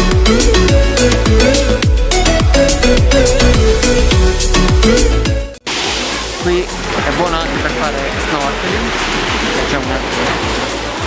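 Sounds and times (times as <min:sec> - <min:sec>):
electronic music: 0:00.0 - 0:11.0
surf on rocky shore: 0:05.6 - 0:11.0.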